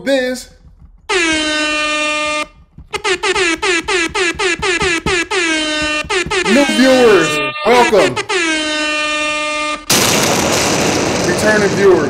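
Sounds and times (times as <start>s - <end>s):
air horn blast: 1.1s - 9.9s.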